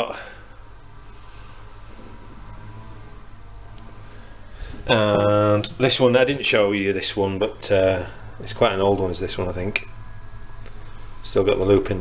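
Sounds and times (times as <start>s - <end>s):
lawn mower drone: 1.2s - 5.0s.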